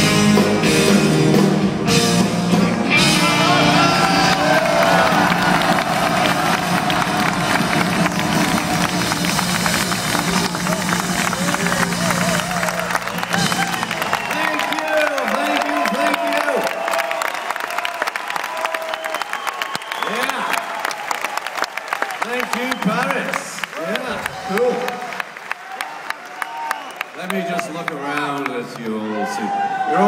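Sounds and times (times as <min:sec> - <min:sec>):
live rock band music: 0:00.0 - 0:16.0
crowd cheering and clapping: 0:00.0 - 0:30.0.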